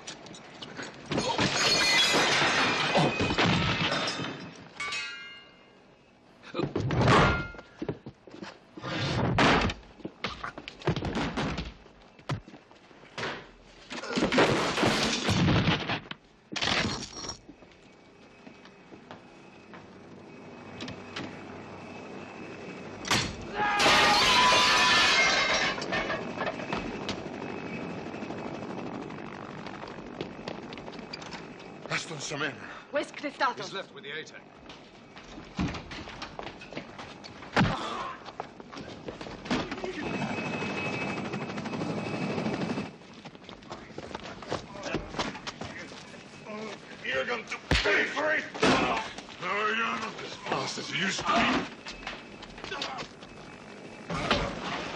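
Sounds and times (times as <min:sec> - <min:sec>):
breaking and shattering: 0:01.1 - 0:05.0, 0:23.8 - 0:26.4.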